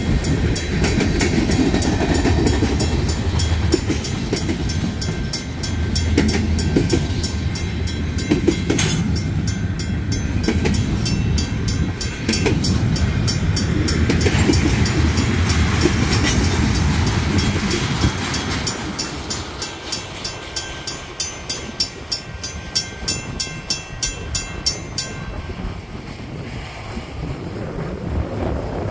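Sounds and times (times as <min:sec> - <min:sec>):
crossing bells ringing: 0:00.0 - 0:26.0
freight train rumble and clatter: 0:00.0 - 0:28.9.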